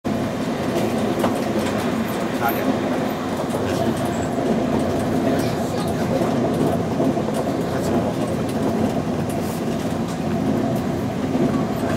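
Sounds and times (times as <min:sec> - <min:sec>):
train wheels rumbling: 0:00.1 - 0:11.9
wheels clacking over rails: 0:00.1 - 0:11.9.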